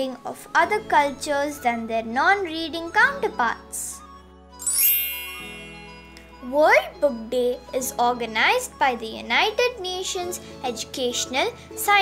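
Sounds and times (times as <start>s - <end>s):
bright tinkling chime: 4.6s - 6.9s.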